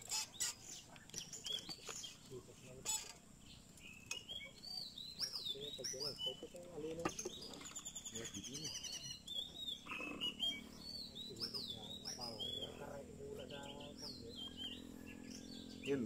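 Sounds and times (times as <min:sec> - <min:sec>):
birds chirping and calling: 0:00.0 - 0:16.0.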